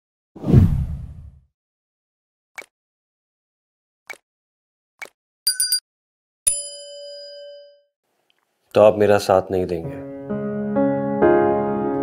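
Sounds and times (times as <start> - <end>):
deep whoosh: 0.4 - 1.4.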